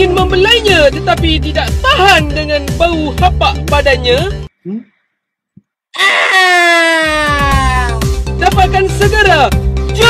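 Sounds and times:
long wailing cry: 6.0s - 8.0s.

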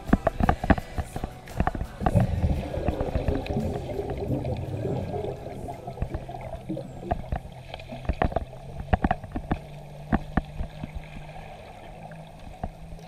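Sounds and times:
sharp underwater clicks and knocks: 0.0s - 11.3s, 12.4s - 13.0s
underwater low rumble and hum: 0.0s - 13.0s.

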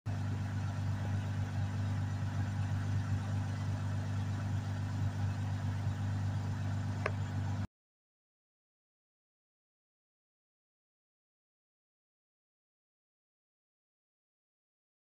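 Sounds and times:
car engine idling: 0.1s - 7.7s.

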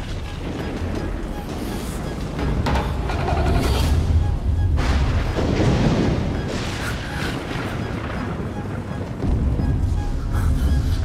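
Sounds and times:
deep rumbling film score: 0.0s - 11.0s.

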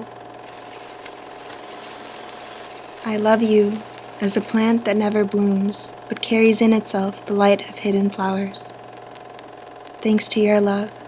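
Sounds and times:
low hum and hiss: 0.0s - 11.0s.

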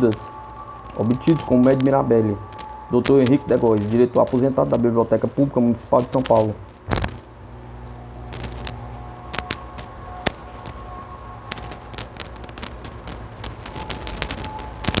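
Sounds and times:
low hum: 6.7s - 15.0s.

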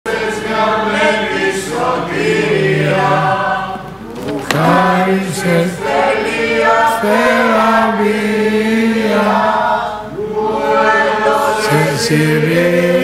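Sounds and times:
man singing slow melody: 4.5s - 5.8s.

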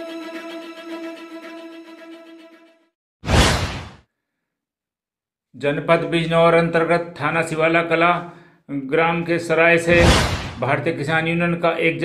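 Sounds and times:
whoosh transition effect: 3.3s - 4.0s, 9.9s - 10.6s.

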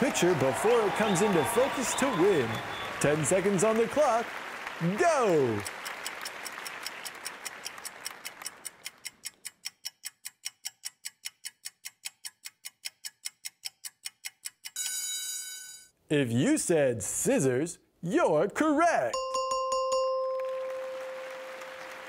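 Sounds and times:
applause: 0.0s - 8.9s, 20.2s - 22.0s
countdown clock ticking: 5.5s - 15.7s
buzzer tone: 14.8s - 15.9s.

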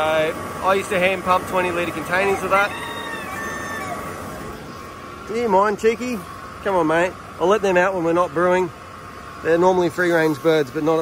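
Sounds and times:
mechanical running noise: 0.0s - 7.1s
faint constant hum: 0.0s - 11.0s.

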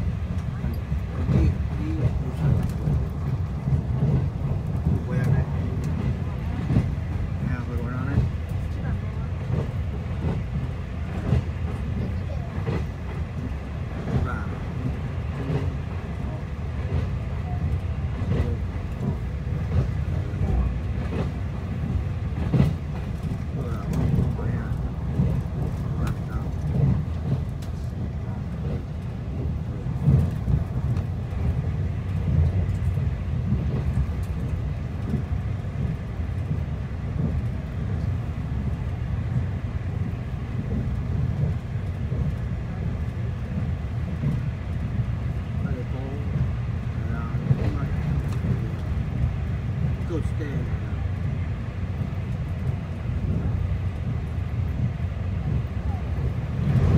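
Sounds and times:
train interior rumble: 0.0s - 56.9s.

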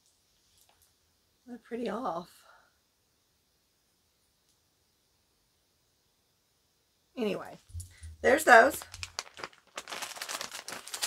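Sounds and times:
packaging crinkling: 7.7s - 11.0s.

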